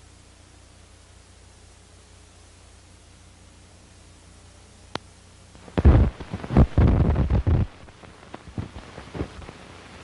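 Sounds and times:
film crackling and thumping: 5.6s - 10.0s.

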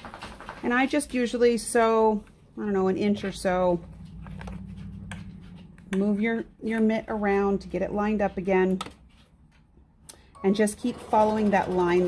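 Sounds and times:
sewing machine stitching: 10.6s - 12.0s.

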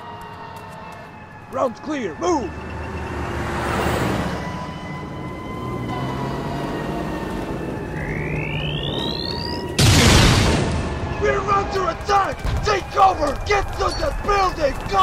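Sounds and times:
sci-fi energy beam rising: 5.9s - 9.8s
loud explosion: 9.8s - 11.2s.

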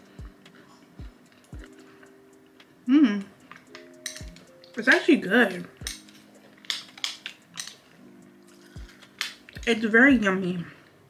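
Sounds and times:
chewing crunchy food: 0.2s - 2.7s, 8.5s - 9.6s.

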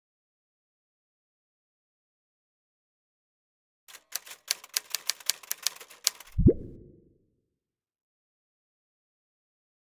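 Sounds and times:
typewriter keys clacking: 3.9s - 6.4s.

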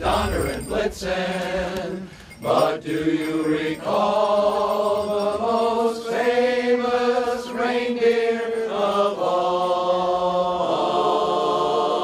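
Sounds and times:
men's chorus singing a cappella: 0.0s - 12.0s.

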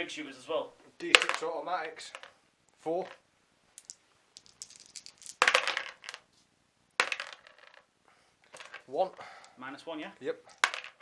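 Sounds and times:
plastic dice rattling in tub: 1.1s - 2.3s, 3.8s - 6.2s, 7.0s - 7.9s, 8.5s - 9.2s, 10.5s - 11.0s.

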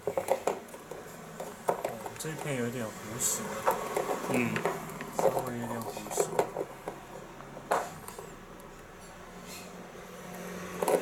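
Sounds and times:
clicks and knocks handling parts: 0.0s - 2.6s, 3.6s - 8.8s, 10.8s - 11.0s.

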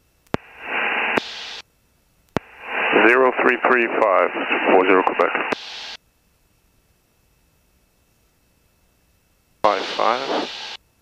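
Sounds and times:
person speaking on headset: 2.9s - 5.5s, 9.7s - 10.5s.

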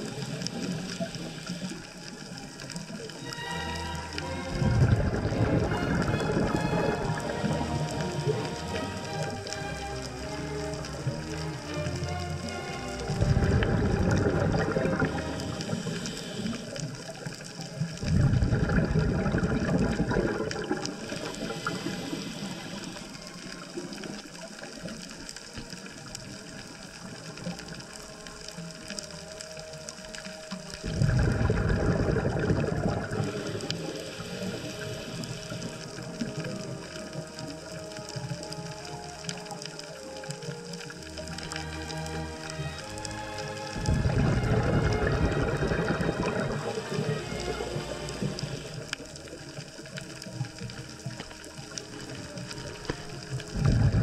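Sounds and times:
underwater hiss: 0.0s - 3.2s, 4.1s - 9.8s, 12.8s - 54.0s
underwater bubbles rushing: 0.0s - 54.0s.

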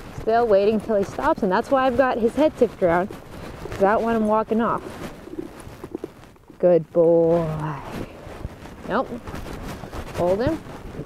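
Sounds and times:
hoof thumps on soft ground: 0.0s - 11.0s
rustling: 0.0s - 11.0s.

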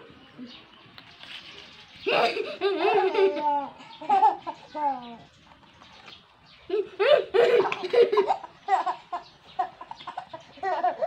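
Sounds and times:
child laughing: 2.0s - 5.0s, 6.7s - 11.0s
baby laughing: 2.1s - 5.2s, 6.7s - 11.0s.

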